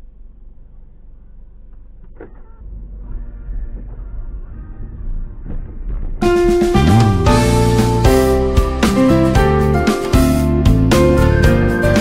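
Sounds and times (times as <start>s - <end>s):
louder low rumble: 0.0s - 8.5s.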